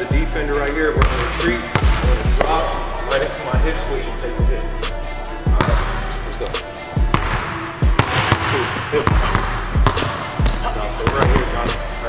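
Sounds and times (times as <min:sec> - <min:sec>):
hip-hop music: 0:00.0 - 0:12.0
basketball bouncing on wooden floor: 0:07.1 - 0:11.5.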